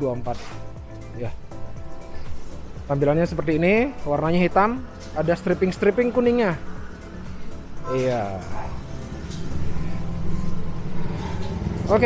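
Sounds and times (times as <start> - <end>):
engine idling: 1.4 - 12.0.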